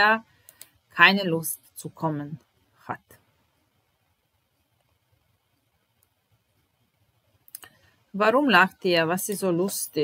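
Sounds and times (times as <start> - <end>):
computer mouse clicks: 0.4 - 0.8.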